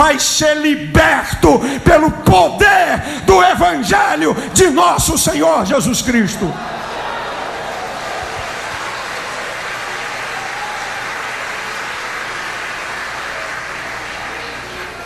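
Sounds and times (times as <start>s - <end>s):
audience applauding: 6.4s - 15.0s.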